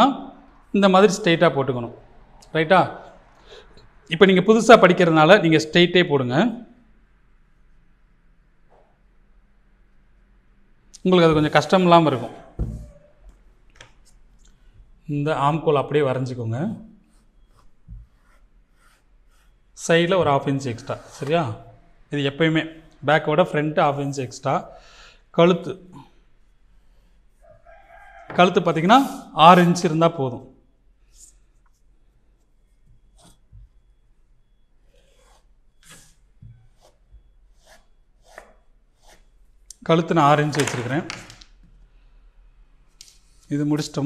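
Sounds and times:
chalk scraping across fabric: 0:17.1 - 0:19.6, 0:34.9 - 0:39.3.

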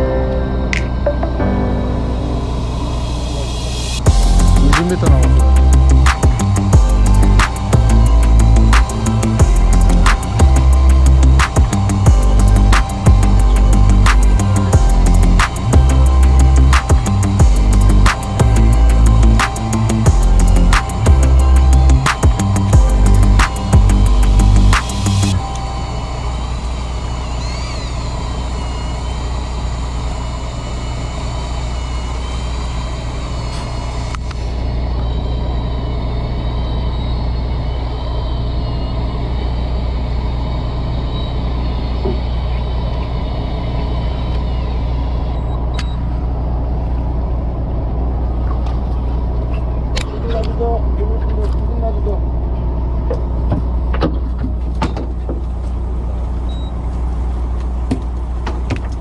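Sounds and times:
boat engine humming: 0:00.0 - 0:59.0
high wavering whine: 0:00.0 - 0:59.0.

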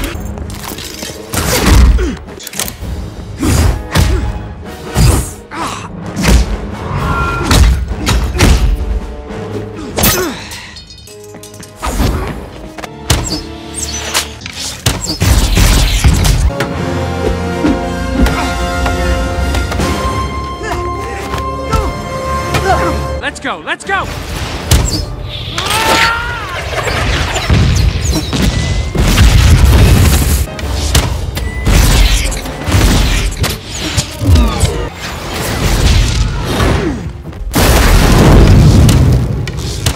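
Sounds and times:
dramatic orchestral score: 0:00.0 - 0:39.9
heavy explosion booms: 0:37.5 - 0:39.4.

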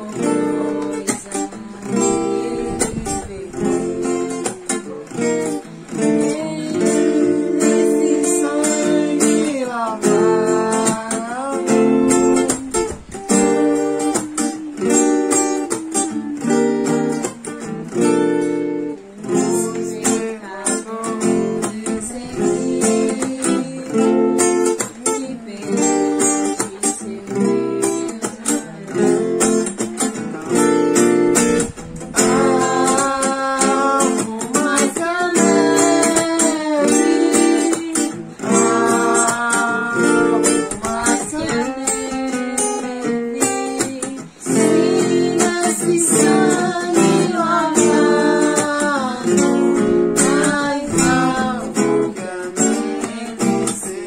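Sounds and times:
person singing a hymn: 0:00.0 - 0:17.4, 0:18.7 - 0:30.9, 0:32.1 - 0:54.0
acoustic guitar strumming: 0:00.0 - 0:54.0.

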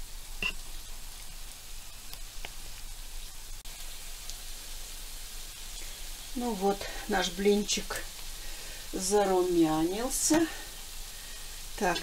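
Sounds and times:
batter sizzling in a pan: 0:00.0 - 0:12.0.

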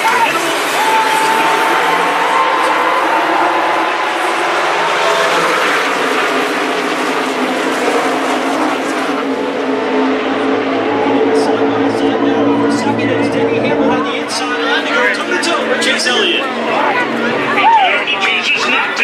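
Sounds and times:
crowd voices: 0:00.0 - 0:19.0
race cars racing past: 0:00.0 - 0:19.0.

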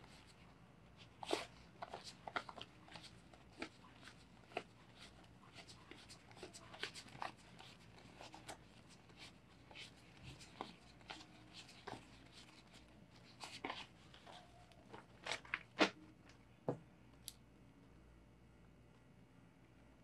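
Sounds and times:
banknotes rustling and snapping: 0:01.2 - 0:16.0.

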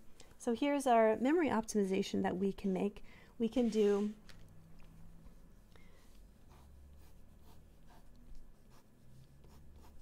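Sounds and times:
low room hum: 0:00.0 - 0:10.0
pen scratching on paper: 0:06.4 - 0:10.0.

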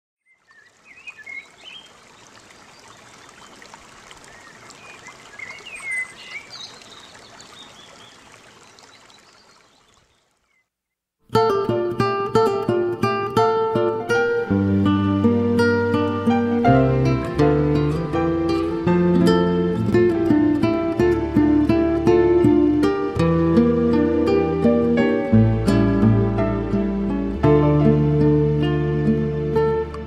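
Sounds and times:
birds chirping: 0:00.2 - 0:10.8
acoustic guitar plucked notes: 0:11.3 - 0:30.0.

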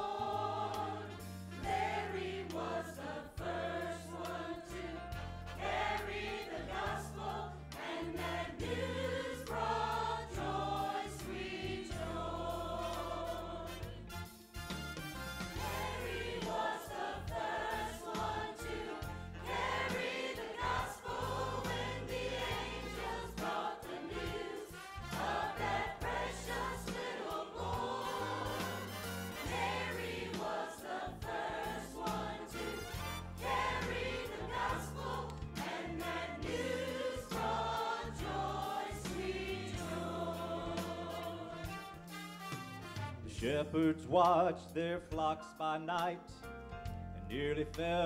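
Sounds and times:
church choir singing: 0:00.0 - 0:14.1, 0:15.5 - 0:41.8
instrumental accompaniment: 0:00.0 - 0:43.6.

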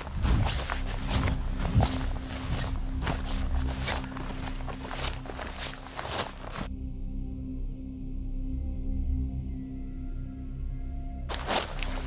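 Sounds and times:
footsteps walking through grass: 0:00.0 - 0:06.7, 0:11.3 - 0:12.0
low music drone: 0:00.0 - 0:12.0.

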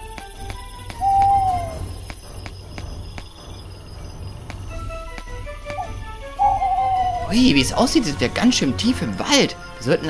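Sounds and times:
drawn-out bird call: 0:00.0 - 0:10.0
night-time woodland ambience: 0:00.0 - 0:10.0.

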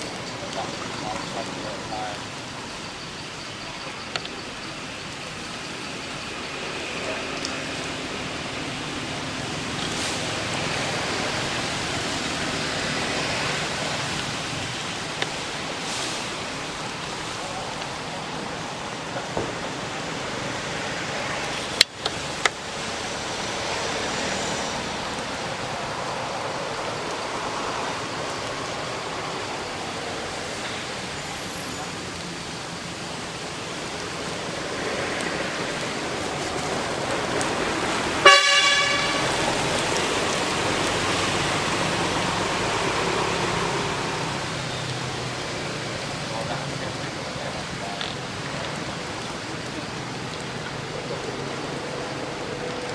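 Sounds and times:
outdoor background hiss: 0:00.0 - 0:52.9.

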